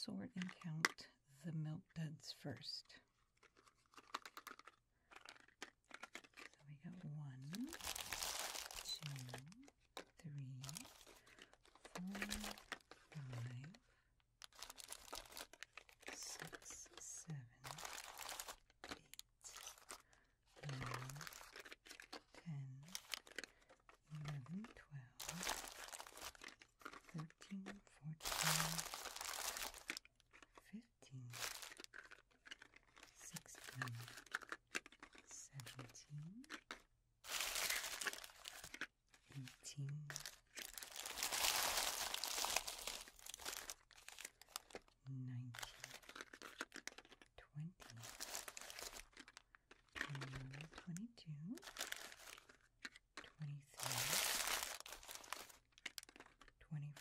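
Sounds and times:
candy wrappers crinkling: 0.0 - 1.1, 2.6 - 57.0.

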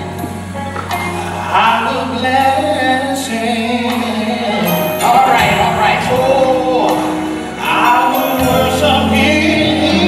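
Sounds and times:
choir singing gospel music: 0.0 - 10.0.

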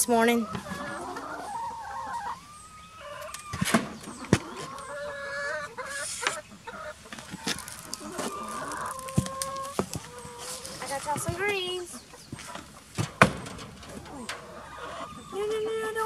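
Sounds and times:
hens clucking and calling: 0.0 - 16.0.

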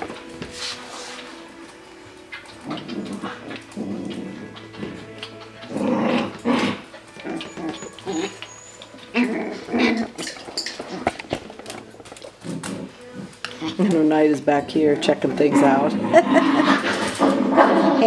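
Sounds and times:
puppies yapping: 2.0 - 13.8
puppies whimpering: 2.2 - 14.0, 15.1 - 17.2.

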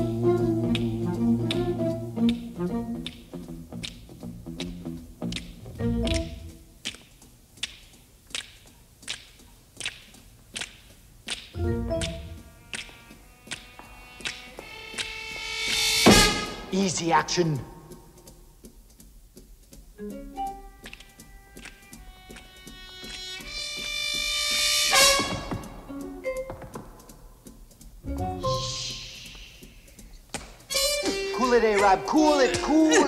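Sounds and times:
finger snaps: 0.4 - 15.2, 20.4 - 23.5, 26.0 - 31.2
short drum strokes: 13.8 - 17.0, 20.8 - 33.0.

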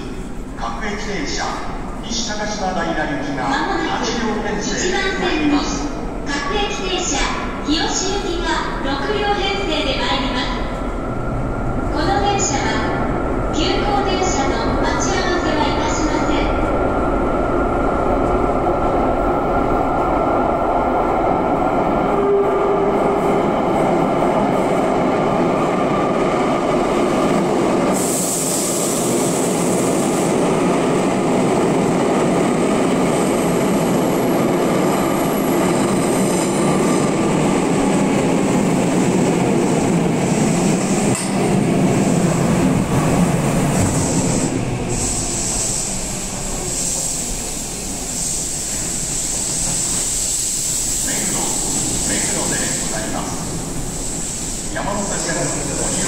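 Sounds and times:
electric train rumbling: 0.0 - 56.0.

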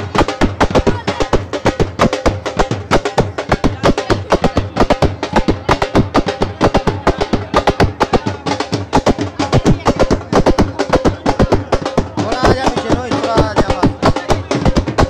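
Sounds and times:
crowd voices: 0.0 - 15.0
fast loud drumming: 0.0 - 15.0.

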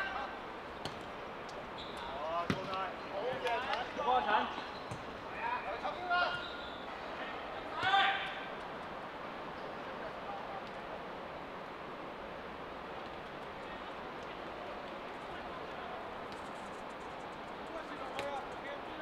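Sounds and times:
players shouting: 1.8 - 8.6.

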